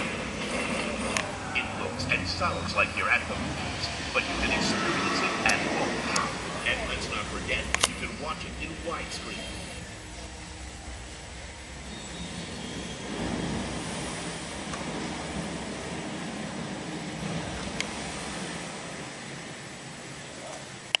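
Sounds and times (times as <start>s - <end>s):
disc drive mechanical whir: 0.0s - 21.0s.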